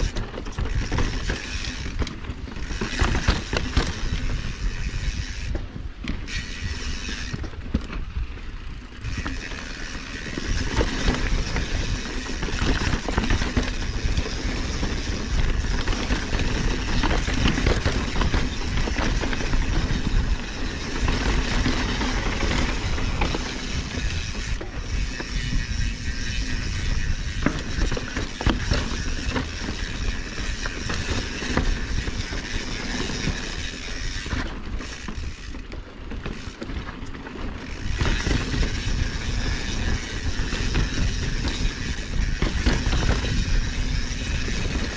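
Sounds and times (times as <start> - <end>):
wind on microphone: 0.0 - 34.3, 37.7 - 44.9
bike rattling over bumps: 0.0 - 44.9.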